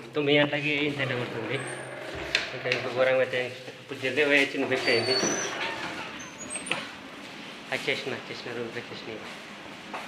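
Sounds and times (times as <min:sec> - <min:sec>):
man speaking: 0:00.4 - 0:05.3.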